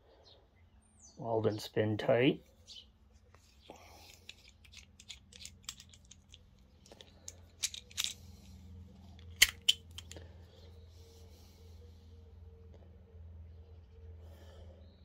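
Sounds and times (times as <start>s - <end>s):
metal clicks and ticks: 4.0s - 8.2s, 9.2s - 10.2s.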